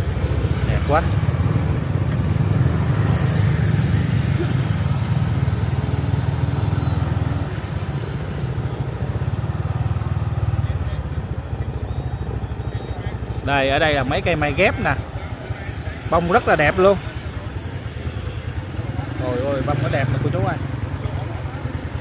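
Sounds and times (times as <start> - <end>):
motorbike engines humming: 0.0 - 22.0.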